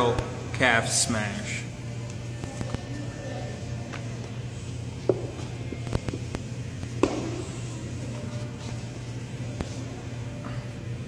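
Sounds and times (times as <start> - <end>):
steady low hum: 0.0 - 11.0
kettlebell knocks and thumps: 7.0 - 7.4.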